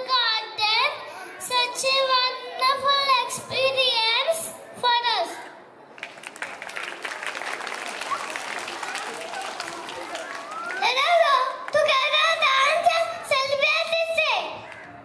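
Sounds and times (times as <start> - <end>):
audience applause: 6.0 - 10.8.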